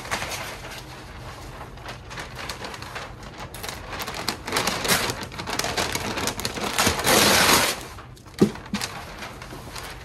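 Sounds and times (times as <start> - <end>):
paper crinkling and rustling: 0.0 - 10.0.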